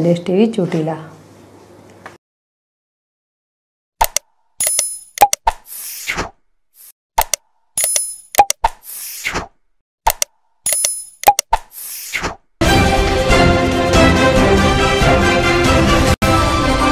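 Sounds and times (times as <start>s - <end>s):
mouse clicks: 4.0s - 5.6s, 7.2s - 8.8s, 10.1s - 11.7s.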